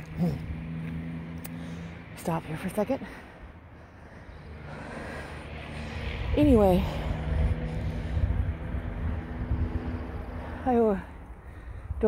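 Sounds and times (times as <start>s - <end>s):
vehicle engine humming: 0.0s - 12.0s
wind rumble on microphone: 5.9s - 10.6s.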